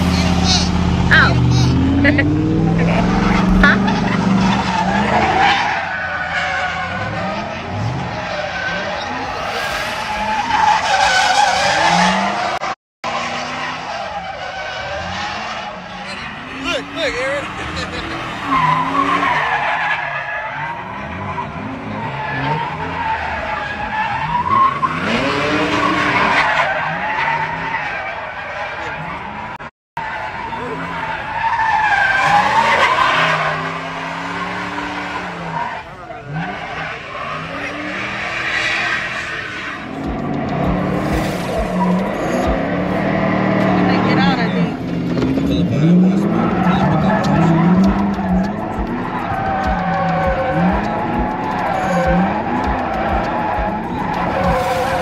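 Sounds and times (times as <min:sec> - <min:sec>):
crowd voices: 0:00.0 - 0:06.3, 0:15.0 - 0:19.9, 0:30.1 - 0:55.0
car engine revving: 0:00.0 - 0:55.0
tyres squealing: 0:13.6 - 0:55.0.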